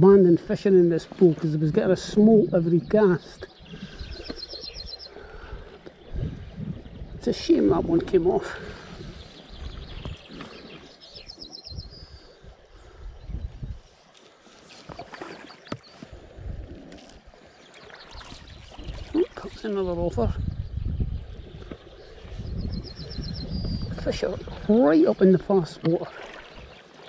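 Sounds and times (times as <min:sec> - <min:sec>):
wind buffeting microphone: 0:00.0 - 0:13.9, 0:16.0 - 0:26.8.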